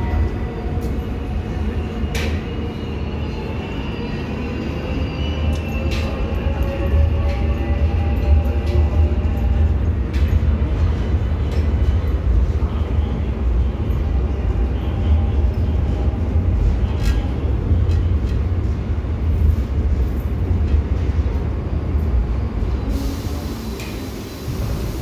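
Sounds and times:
electric train rumbling: 0:00.0 - 0:25.0.

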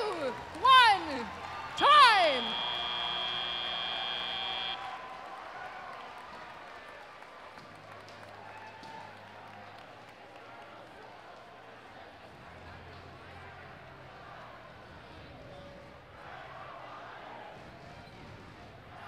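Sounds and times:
crowd chatter: 0:00.0 - 0:04.9
scattered applause: 0:00.0 - 0:12.5
high electronic tone: 0:01.8 - 0:04.8.

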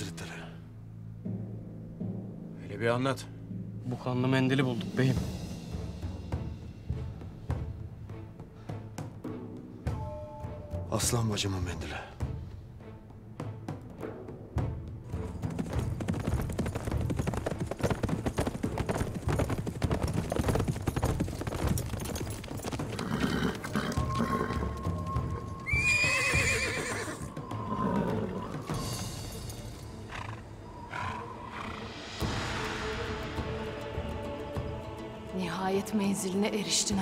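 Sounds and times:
background music: 0:00.0 - 0:37.0
horses galloping hoofbeats: 0:15.0 - 0:31.7
horse neighing: 0:22.9 - 0:28.8, 0:30.1 - 0:31.9.

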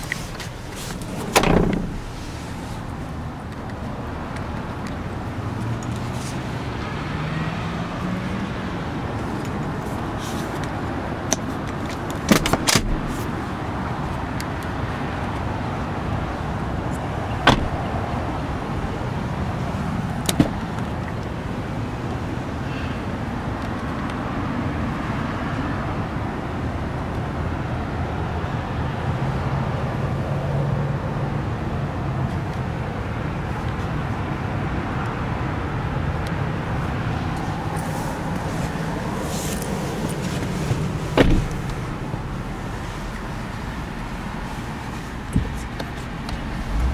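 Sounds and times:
low engine hum: 0:00.0 - 0:23.0, 0:29.8 - 0:46.9.

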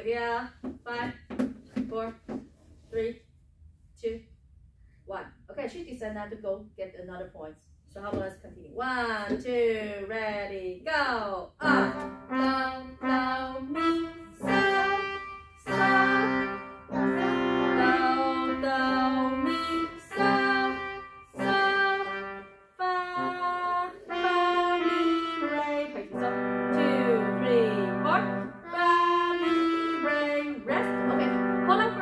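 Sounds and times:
digital pianos slow melody: 0:11.6 - 0:32.0.

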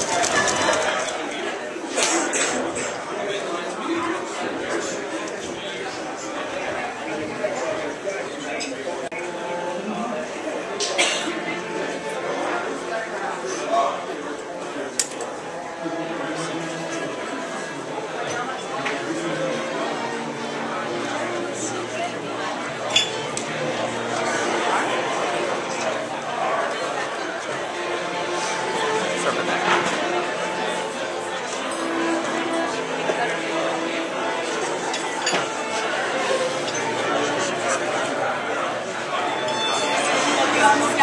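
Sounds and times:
crowd chatter: 0:00.0 - 0:41.0.

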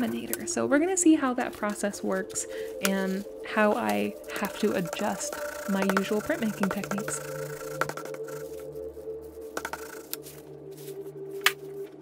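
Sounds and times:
background music with held notes: 0:00.0 - 0:12.0
sharp clicks and taps: 0:03.8 - 0:08.4.

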